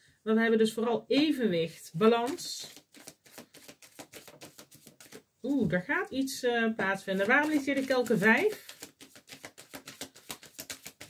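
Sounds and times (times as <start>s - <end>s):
cards being shuffled: 2.1s - 5.2s, 6.8s - 11.0s.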